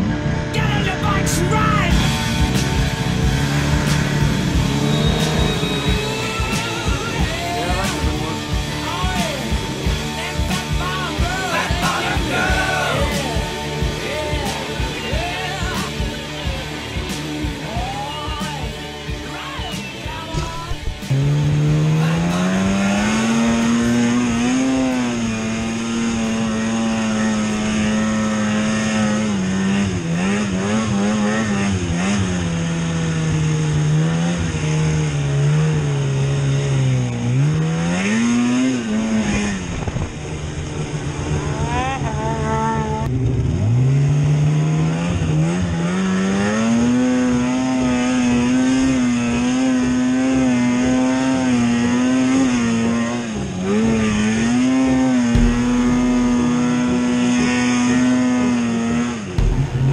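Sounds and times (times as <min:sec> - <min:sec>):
snowmobile engine revving: 0:00.0 - 0:59.9.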